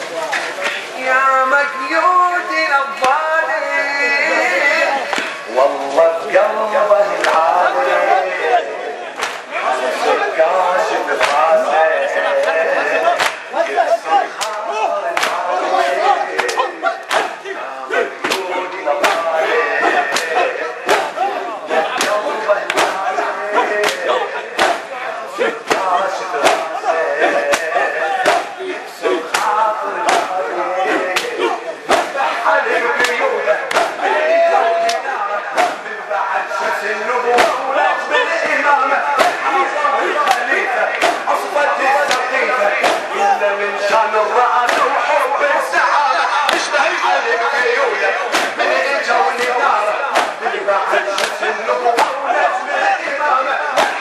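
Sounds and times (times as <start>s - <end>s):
crowd of men chanting: 0.0s - 54.0s
man's amplified voice leading lament: 0.0s - 54.0s
chest beating slaps: 5.1s - 5.4s, 9.2s - 9.5s, 11.2s - 11.6s, 12.4s - 13.8s, 14.4s - 15.5s, 16.4s - 17.5s, 18.2s - 32.4s, 33.0s - 35.9s, 37.3s - 37.9s, 39.1s - 43.4s, 44.6s - 45.0s, 48.2s - 52.4s, 53.7s - 54.0s.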